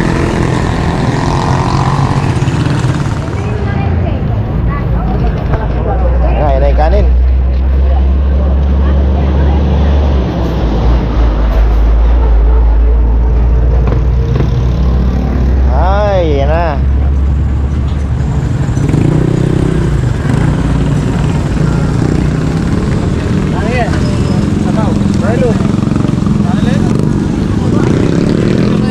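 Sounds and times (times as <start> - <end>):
motorcycle traffic: 0.0 - 28.9
steady low rumble: 9.5 - 15.8.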